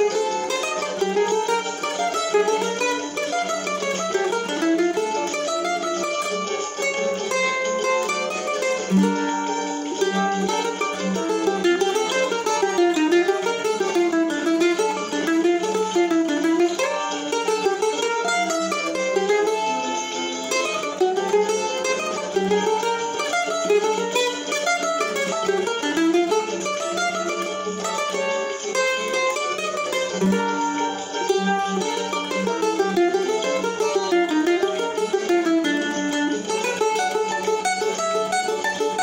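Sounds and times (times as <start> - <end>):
mandolin picking quick melody: 0.0 - 39.0.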